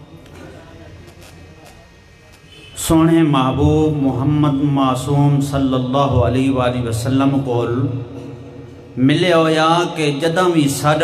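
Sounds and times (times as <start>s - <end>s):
man chanting into a microphone: 2.6s - 8.1s, 9.0s - 11.0s.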